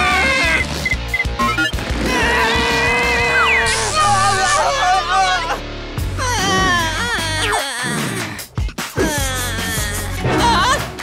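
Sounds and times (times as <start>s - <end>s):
background music: 0.0s - 11.0s
cartoon voices crying out: 2.1s - 5.6s, 9.0s - 10.8s.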